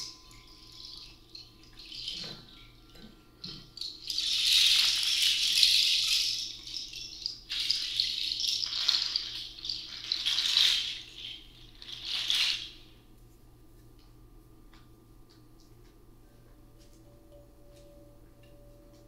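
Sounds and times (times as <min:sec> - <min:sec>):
hand shaker rattling: 0:03.4 - 0:13.0.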